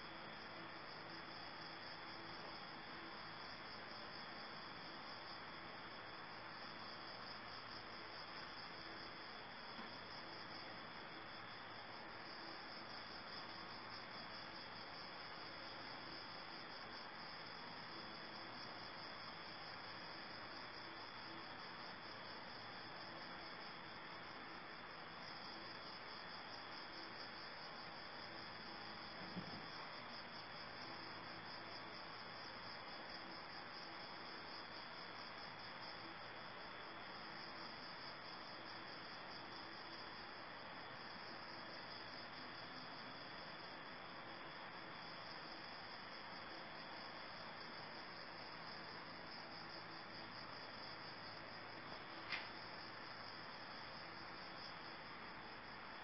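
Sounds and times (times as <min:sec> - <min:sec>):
insects chirring: 0:00.2 - 0:56.0.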